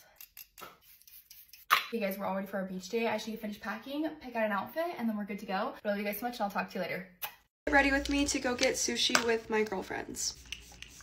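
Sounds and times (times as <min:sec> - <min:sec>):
woman speaking: 0:07.7 - 0:10.4.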